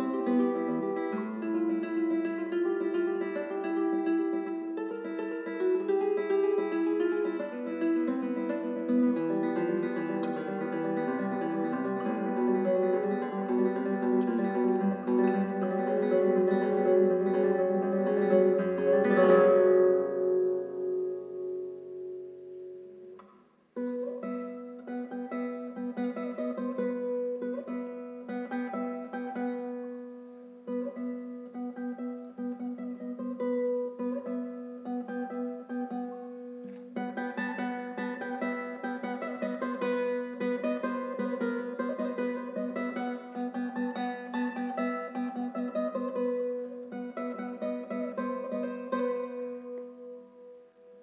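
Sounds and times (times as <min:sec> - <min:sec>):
classical guitar fingerstyle: 0:00.0 - 0:51.0.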